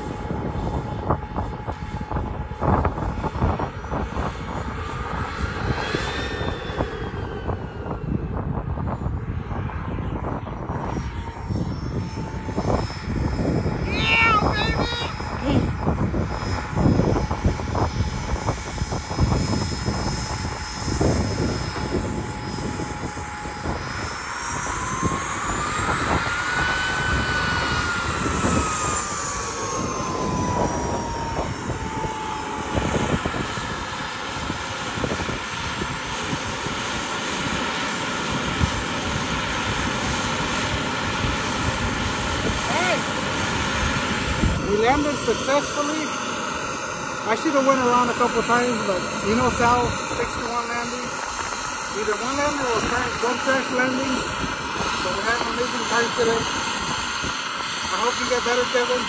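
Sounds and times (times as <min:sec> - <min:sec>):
jet turbine whining: 0:00.0 - 0:59.0
wind noise on microphone: 0:00.0 - 0:59.0.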